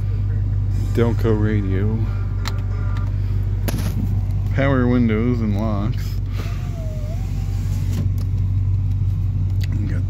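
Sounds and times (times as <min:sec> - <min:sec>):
car engine idling: 0:00.0 - 0:10.0
power window motor whine: 0:06.3 - 0:08.5.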